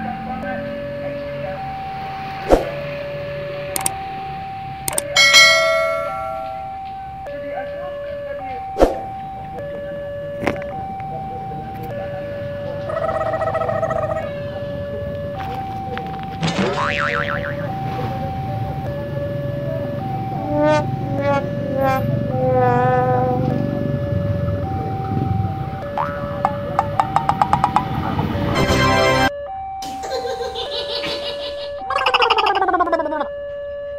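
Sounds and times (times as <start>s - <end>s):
electronic two-note tone: 4.9s - 6.9s, 16.4s - 29.3s
springy rising boing: 16.6s - 17.8s, 20.4s - 23.5s, 25.8s - 28.0s
warbling chirps: 16.7s - 17.8s, 20.4s - 23.1s, 25.8s - 27.9s.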